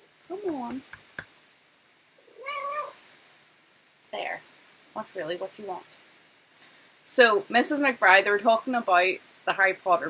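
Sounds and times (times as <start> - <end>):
cat meowing: 2.2 - 3.0.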